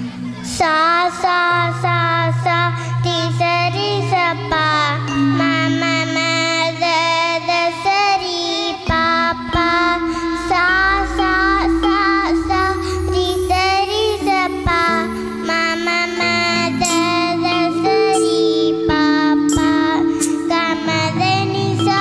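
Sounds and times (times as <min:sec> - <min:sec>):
girl singing into a microphone: 0:00.0 - 0:22.0
instrumental backing with steady beat: 0:00.0 - 0:22.0.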